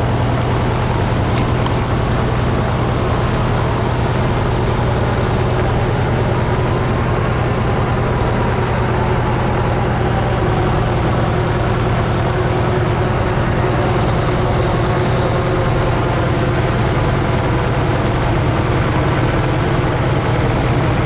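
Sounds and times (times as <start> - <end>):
diesel engine drone: 0.0 - 21.0.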